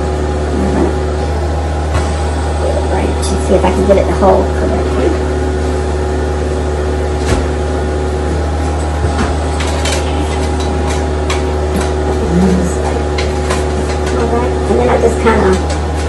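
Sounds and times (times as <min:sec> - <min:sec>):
low mechanical hum: 0:00.0 - 0:16.0.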